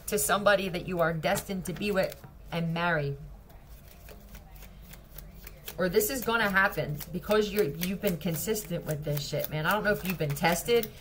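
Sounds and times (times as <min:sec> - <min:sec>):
cards being shuffled: 0:03.7 - 0:11.0.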